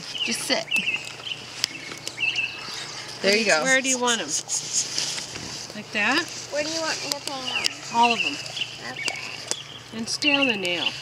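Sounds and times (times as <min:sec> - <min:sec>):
songbird chirping: 0:00.0 - 0:04.5, 0:05.8 - 0:11.0.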